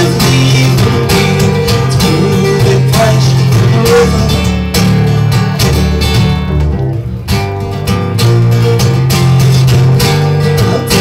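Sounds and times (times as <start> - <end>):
acoustic guitars strumming: 0.0 - 11.0.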